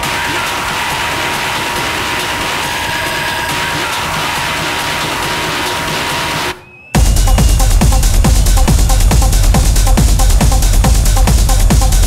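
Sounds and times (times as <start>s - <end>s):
kick-drum beat: 0.0s - 12.0s.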